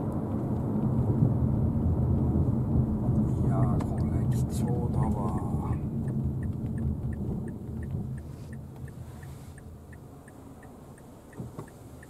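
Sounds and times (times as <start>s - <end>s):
low road and engine rumble: 0.0s - 12.0s
turn signal ticking: 0.0s - 12.0s.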